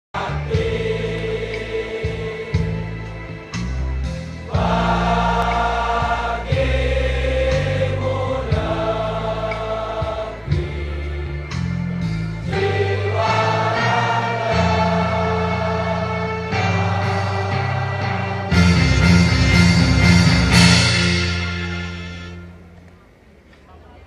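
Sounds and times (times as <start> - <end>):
young men singing in chorus: 0.2 - 3.0, 4.5 - 11.4, 12.5 - 18.5
instrumental accompaniment with bass: 0.2 - 23.1.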